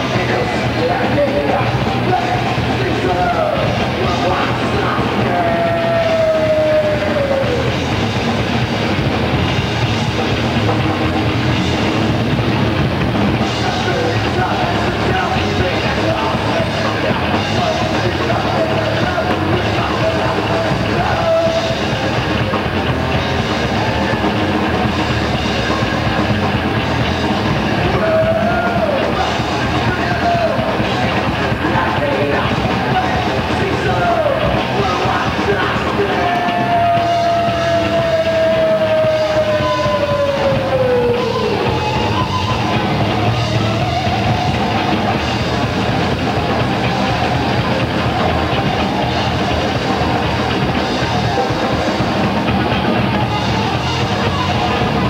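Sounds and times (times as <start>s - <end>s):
distorted electric guitars: 0.0s - 55.0s
fast dense drumming: 0.0s - 55.0s
thrash metal band jamming: 0.0s - 55.0s.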